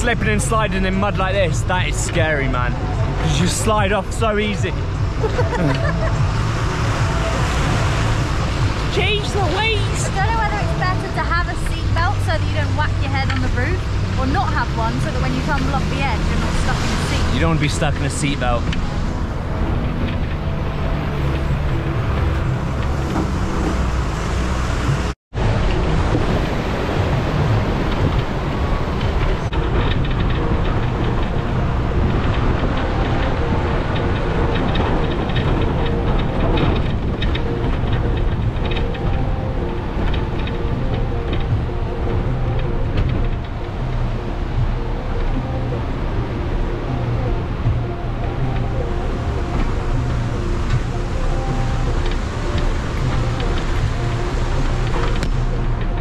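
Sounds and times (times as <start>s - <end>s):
background music: 0.0s - 56.0s
bus engine: 0.0s - 56.0s
tyres on rough dirt road: 0.0s - 56.0s.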